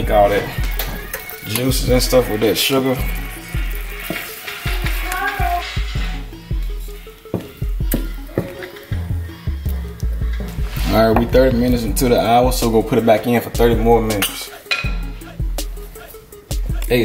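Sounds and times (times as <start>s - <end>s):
wooden spoon stirring syrup: 0.0s - 9.0s
sugar syrup bubbling and sizzling: 0.0s - 10.7s
background music with bass line: 0.0s - 17.0s.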